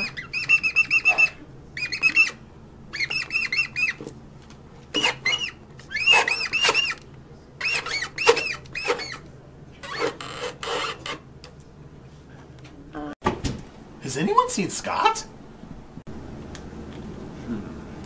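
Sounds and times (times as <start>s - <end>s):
high-pitched squeaky laughter: 0.0s - 2.4s.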